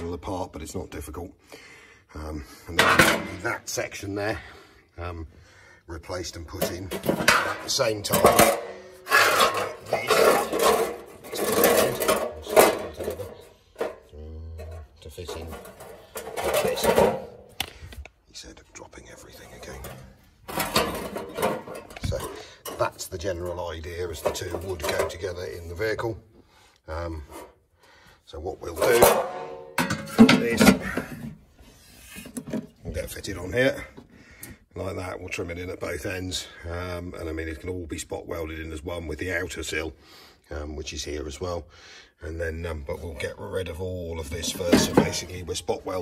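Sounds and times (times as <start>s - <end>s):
person speaking: 5.9s - 17.3s, 18.0s - 27.5s
steel panels scraping together: 6.5s - 17.5s, 19.6s - 25.4s, 28.6s - 32.6s.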